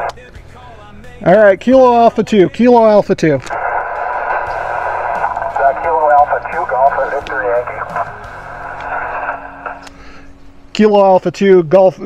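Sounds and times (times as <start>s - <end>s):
radio static hiss: 3.2s - 10.2s
weak distant voice on radio: 5.2s - 8.1s.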